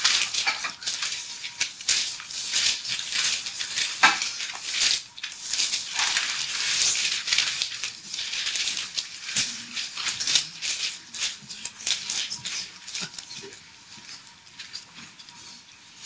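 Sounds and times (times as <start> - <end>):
pages being flipped: 0.0 - 13.4.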